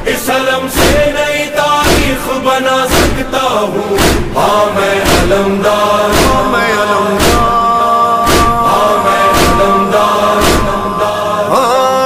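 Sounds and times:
person singing devotional song: 0.0s - 12.0s
percussive beat: 0.8s - 3.4s, 4.0s - 6.6s, 7.2s - 10.9s.

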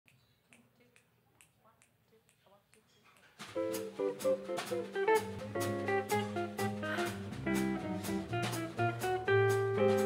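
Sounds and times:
jazz band playing: 3.4s - 10.0s.

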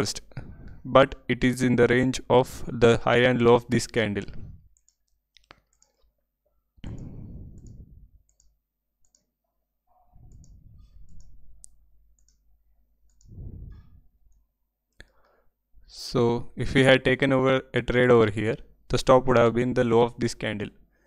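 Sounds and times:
computer mouse clicking: 4.7s - 6.1s, 6.8s - 9.3s, 10.3s - 12.4s, 13.1s - 13.4s
soft dull noises: 10.0s - 11.8s.

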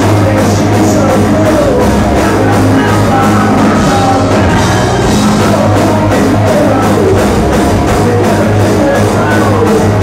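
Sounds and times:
drum kit fast beat: 0.0s - 10.0s
electric guitars and bass: 0.0s - 10.0s.

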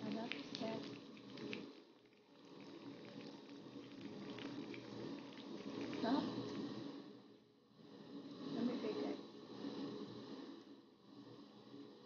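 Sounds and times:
leaves frying in oil: 0.0s - 6.4s.

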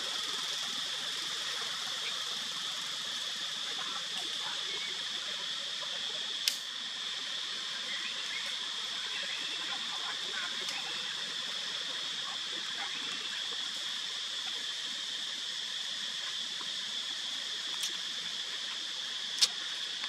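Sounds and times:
outdoor hiss: 0.0s - 20.0s
sharp click: 6.4s - 6.7s, 19.4s - 19.6s.

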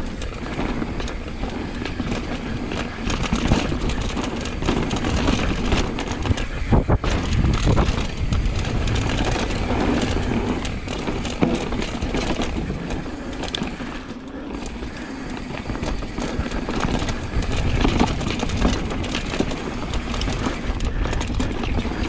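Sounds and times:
bike tyres on dirt and rock: 0.0s - 22.0s.

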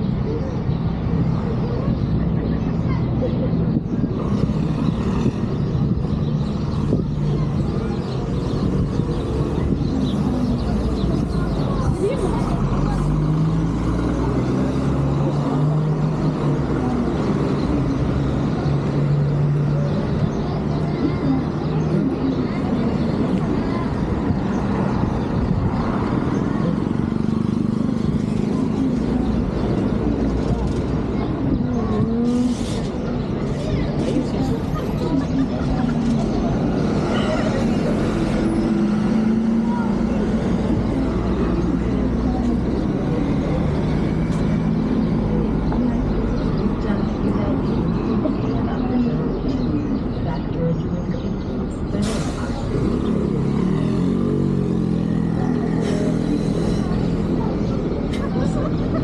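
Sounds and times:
people's voices: 0.0s - 59.0s
traffic engine hum: 0.0s - 59.0s.

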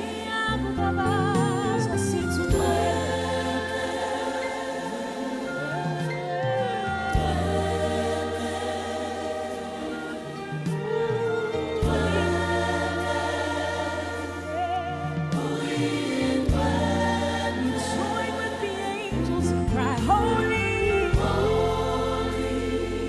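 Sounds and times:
young voices singing in harmony: 0.0s - 23.0s.

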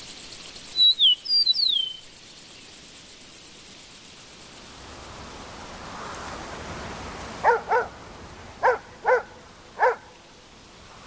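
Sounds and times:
soft rushing hiss: 0.0s - 11.0s
dog barking: 7.4s - 8.0s, 8.6s - 10.1s.

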